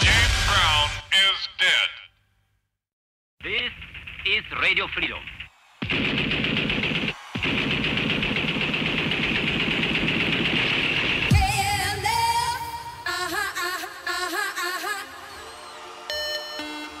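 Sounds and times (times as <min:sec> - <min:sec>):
voice: 0:00.0 - 0:02.1, 0:03.4 - 0:05.2
electronic dance music: 0:04.3 - 0:15.1
machine-gun fire burst: 0:05.8 - 0:12.1.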